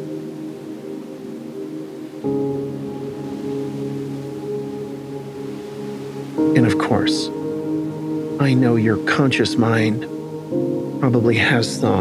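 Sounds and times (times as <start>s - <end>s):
soft sustained ambient chord: 0.0s - 12.0s.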